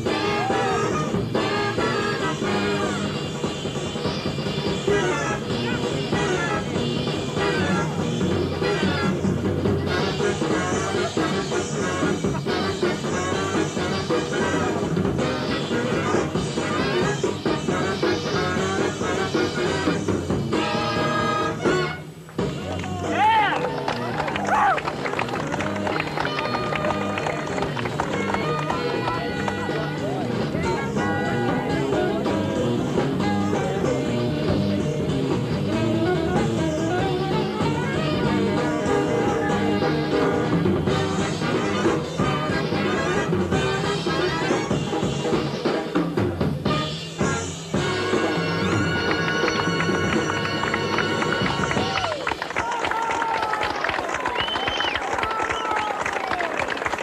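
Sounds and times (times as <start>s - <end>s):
jazz big band playing: 0.0s - 22.7s, 24.9s - 52.1s
drum kit with cymbals: 0.0s - 23.3s, 28.1s - 51.9s
horn section chords: 0.0s - 52.1s
crowd noise: 0.0s - 57.0s
crowd whistles: 53.4s - 56.7s.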